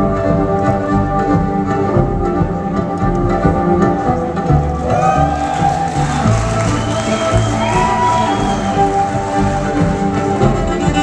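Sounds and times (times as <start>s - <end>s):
low sustained backing notes: 0.0s - 4.9s
violin playing: 0.0s - 11.0s.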